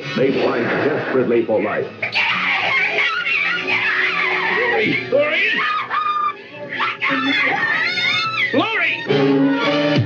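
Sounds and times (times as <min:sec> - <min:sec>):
woman screaming: 0:02.1 - 0:09.1.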